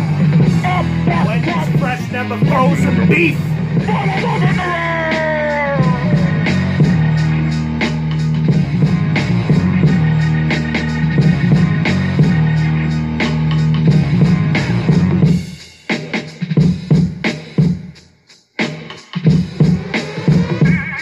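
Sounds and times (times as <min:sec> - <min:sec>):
instrumental music with bass and drums: 0:00.0 - 0:21.0.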